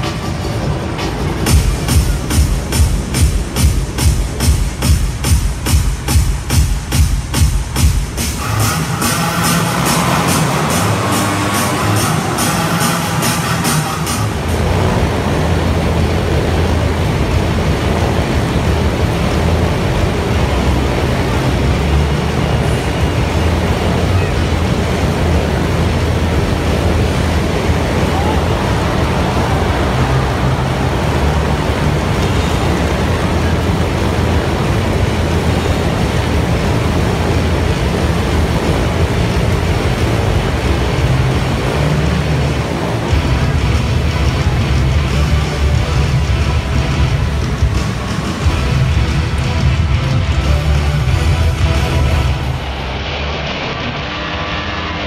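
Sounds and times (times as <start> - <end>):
motorcycle engines running: 0.0 - 52.9
rhythmic music: 0.0 - 53.4.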